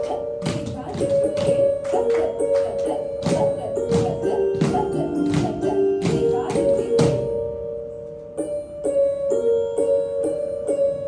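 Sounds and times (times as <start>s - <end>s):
sharp rhythmic taps: 0.0s - 7.3s
classical dance music: 0.0s - 11.0s.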